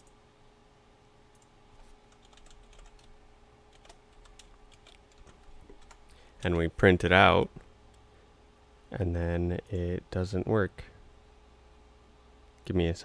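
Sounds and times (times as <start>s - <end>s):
typing on computer keyboard: 2.1s - 3.1s, 3.7s - 6.0s.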